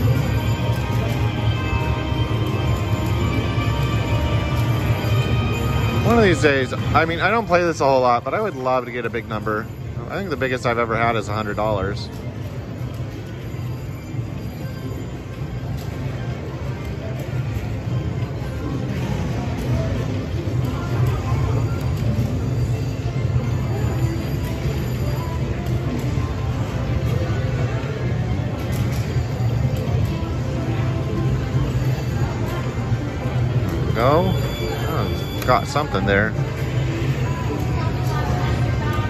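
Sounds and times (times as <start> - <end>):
slot machine spin sounds: 0.0 - 12.7, 19.2 - 38.9
slot machine game music: 0.0 - 38.9.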